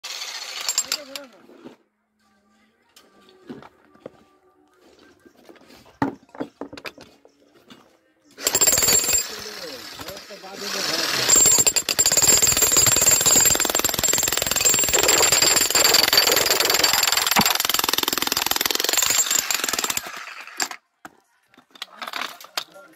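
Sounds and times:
demolition hammer on stone: 8.4s - 10.2s, 10.8s - 20.8s.

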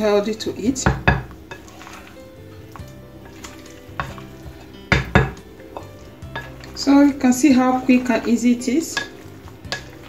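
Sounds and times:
spoon mixing potato salad: 0.2s - 10.0s
spoon knocking against bowl: 4.9s - 6.6s.

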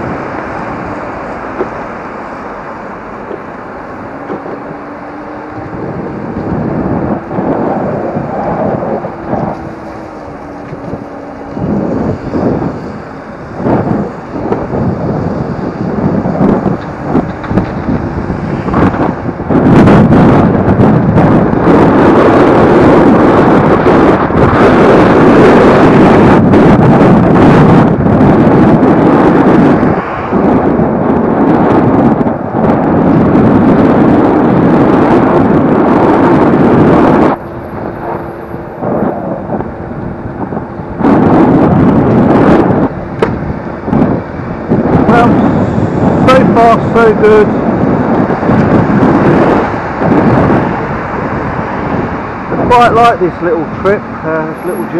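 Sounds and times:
road and traffic noise: 0.0s - 54.9s
wind buffeting microphone: 0.0s - 54.9s.

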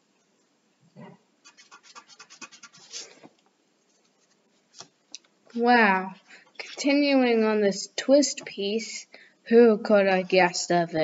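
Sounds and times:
pencil scratching on paper: 1.4s - 3.2s.

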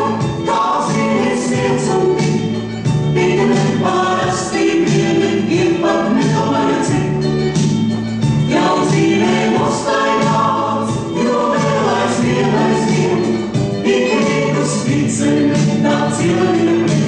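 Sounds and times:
choir singing a folk song: 0.0s - 17.0s
instrumental music: 0.0s - 17.0s.

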